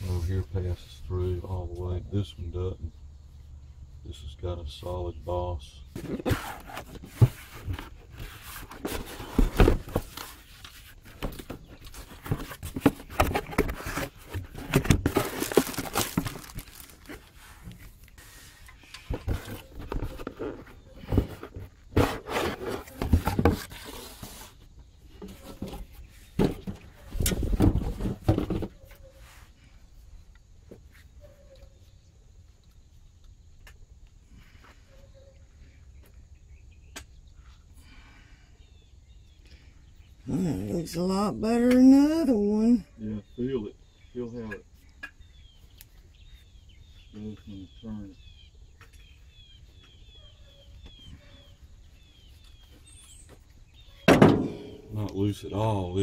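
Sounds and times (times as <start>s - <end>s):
faint outdoor background: 0.0s - 56.0s
cardboard packaging rustling: 6.0s - 24.6s.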